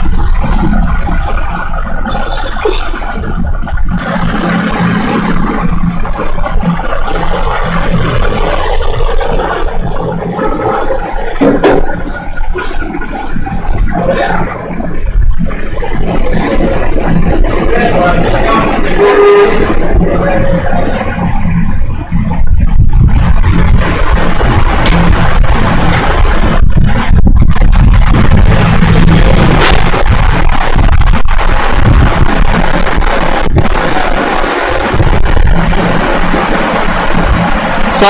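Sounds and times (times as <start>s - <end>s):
loud low rumble: 0.0s - 38.0s.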